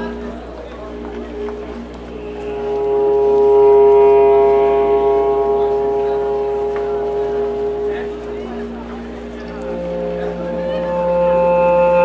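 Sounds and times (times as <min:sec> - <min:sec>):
clarinet holding a note: 0:00.0 - 0:12.0
wooden wind instrument note: 0:00.0 - 0:12.0.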